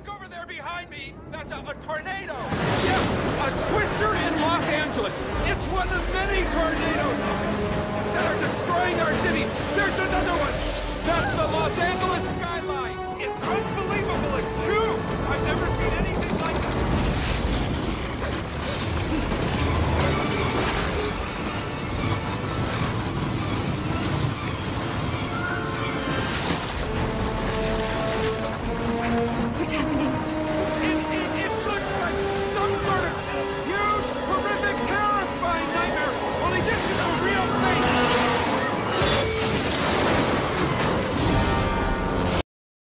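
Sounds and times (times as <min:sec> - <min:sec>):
dramatic film music: 0:00.0 - 0:42.4
debris crashing: 0:02.4 - 0:12.2, 0:13.4 - 0:29.1, 0:30.5 - 0:42.4
people crying out: 0:11.0 - 0:11.7.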